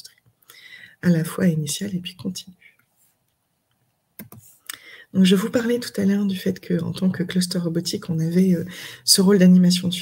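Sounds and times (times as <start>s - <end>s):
computer key clicks: 4.2s - 4.5s.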